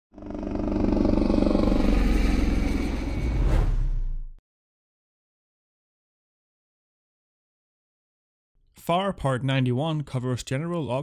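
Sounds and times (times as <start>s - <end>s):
helicopter engine and rotor: 0.1s - 3.4s.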